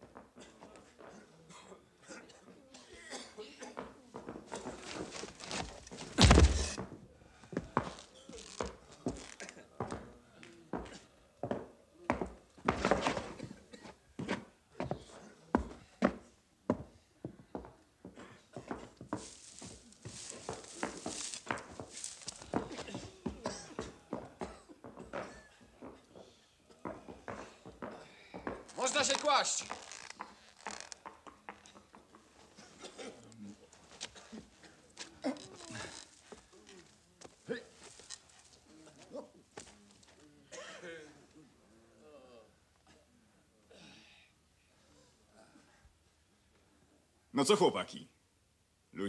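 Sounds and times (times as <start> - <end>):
footsteps on wooden floor: 4.2 - 6.9, 16.7 - 32.2
shuffling and rustling: 4.5 - 6.8, 18.8 - 23.2.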